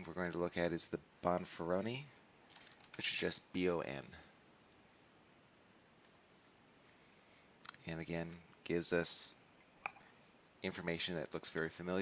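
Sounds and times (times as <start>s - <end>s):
faint computer mouse clicks: 6.0s - 6.3s.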